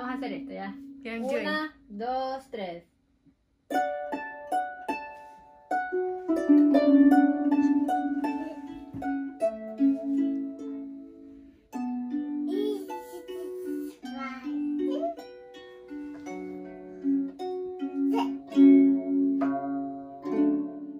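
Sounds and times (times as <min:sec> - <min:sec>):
harp being plucked: 0:03.7 - 0:20.9.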